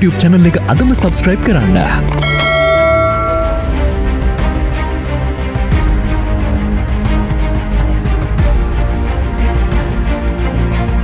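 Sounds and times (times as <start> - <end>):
low sustained background music tone: 0.9 - 6.5
notification bell ding: 2.1 - 3.8.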